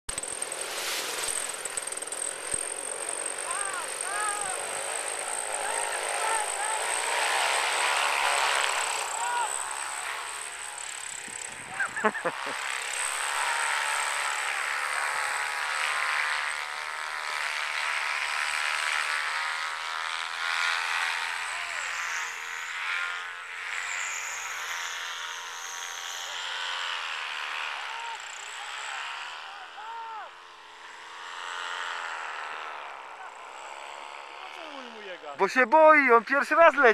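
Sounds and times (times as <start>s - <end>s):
paramotor engine running: 0.1s - 36.9s.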